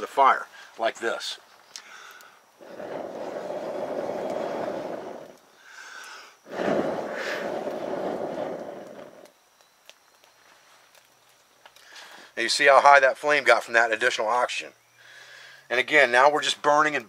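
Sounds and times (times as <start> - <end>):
man blowing on fire: 1.8 - 9.3.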